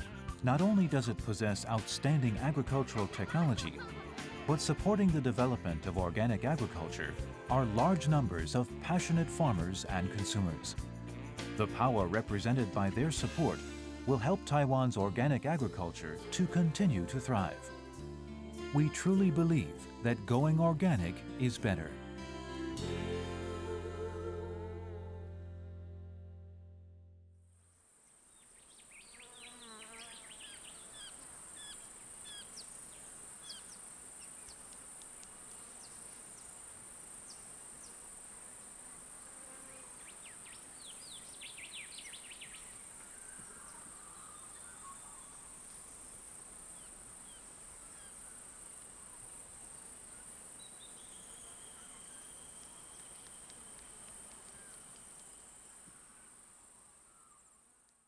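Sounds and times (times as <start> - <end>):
insects droning: 27.6 - 58.0.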